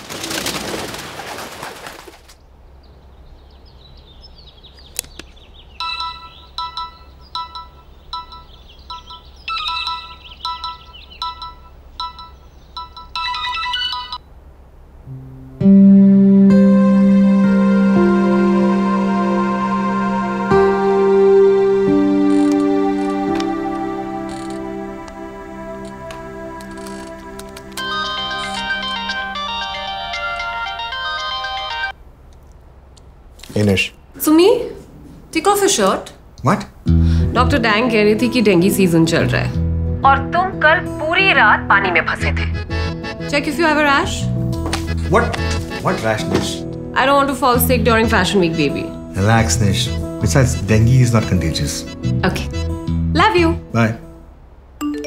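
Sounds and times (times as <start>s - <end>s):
smartphone ringtone chiming: 5.8s - 14.2s, 27.8s - 32.0s.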